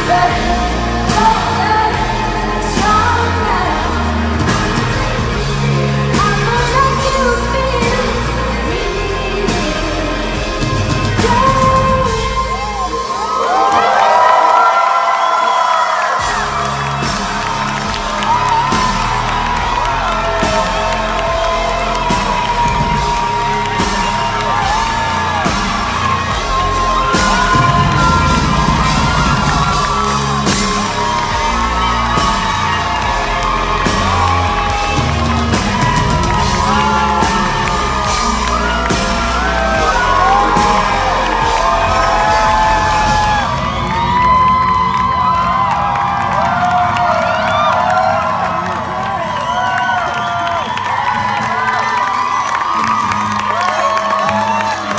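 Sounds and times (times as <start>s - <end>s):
drums and bass beat: 0.0s - 13.8s, 16.2s - 54.9s
live pop band playing: 0.0s - 15.1s, 16.1s - 54.9s
crowd whooping and cheering: 0.0s - 54.9s.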